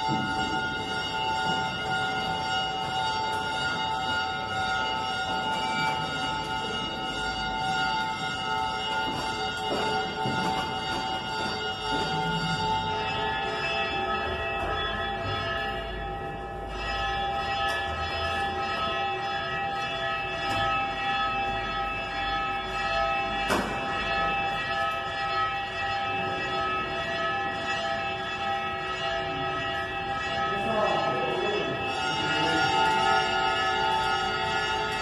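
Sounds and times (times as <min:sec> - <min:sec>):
church bells ringing: 0:00.0 - 0:35.0.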